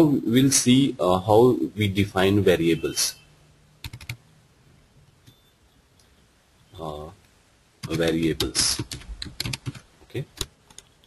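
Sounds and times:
keyboard keystrokes: 3.8s - 4.2s, 7.8s - 9.8s.

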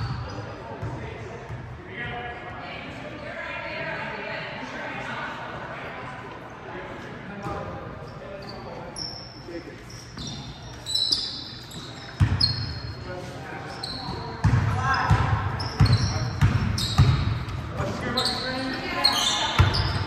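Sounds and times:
sneaker squeaks: 0.0s - 1.7s, 7.4s - 20.0s.

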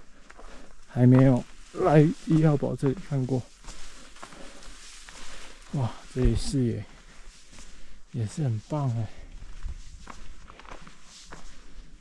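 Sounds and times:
footsteps on dirt trail with leaves: 0.0s - 12.0s.

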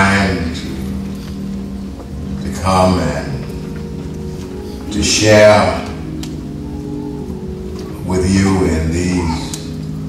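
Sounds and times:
keyboard chord held: 0.0s - 10.0s.

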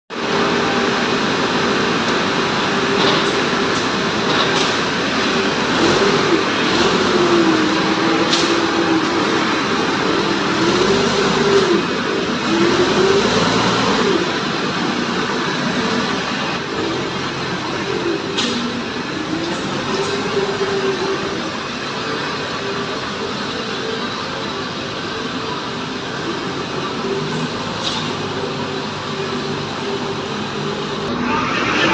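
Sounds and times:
factory machinery noise: 0.1s - 31.9s
forklift engine running: 0.1s - 31.9s.

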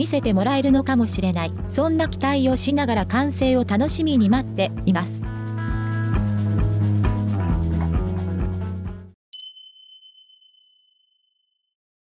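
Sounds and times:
background music: 0.0s - 9.2s
bright chime ding: 9.4s - 11.0s.

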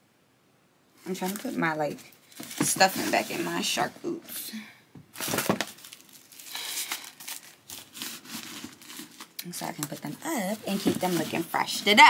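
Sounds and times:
paper crinkling: 1.0s - 3.8s, 5.1s - 12.0s.

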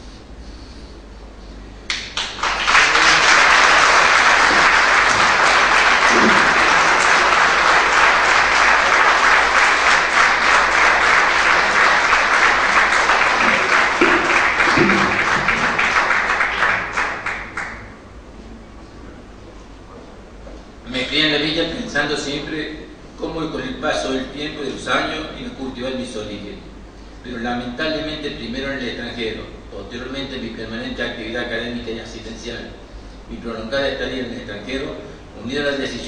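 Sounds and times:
audience applauding: 1.9s - 18.0s.

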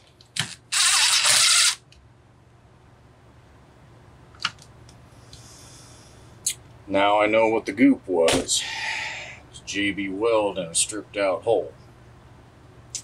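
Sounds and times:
cordless drill driving screw: 0.7s - 1.8s.

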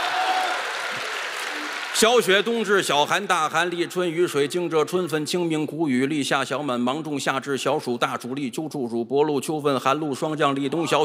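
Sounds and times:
audience applauding: 0.0s - 2.7s.

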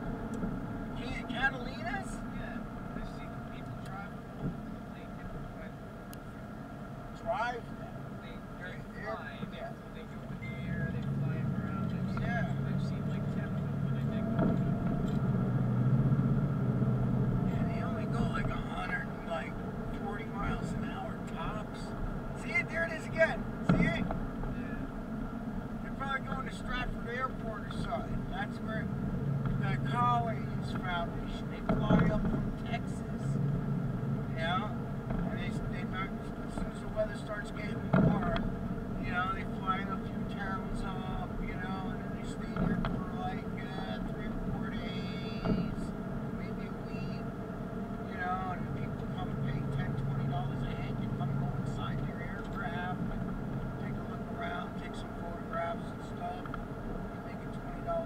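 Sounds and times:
car engine and road hum: 0.0s - 58.0s
sharp thumps: 14.3s - 15.4s, 37.8s - 38.6s.

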